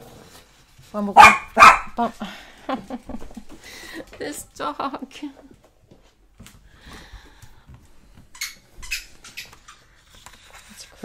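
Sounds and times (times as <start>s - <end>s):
paper pages rustling: 10.0s - 11.0s.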